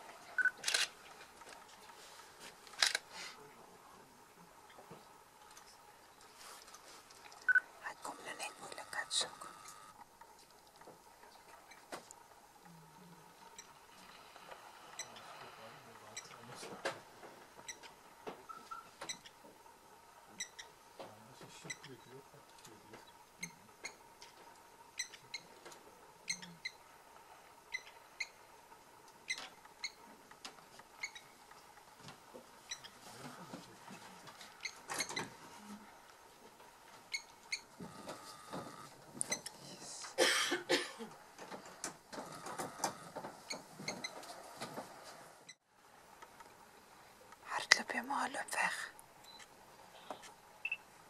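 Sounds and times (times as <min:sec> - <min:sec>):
faint outdoor ambience: 0:00.0 - 0:51.0.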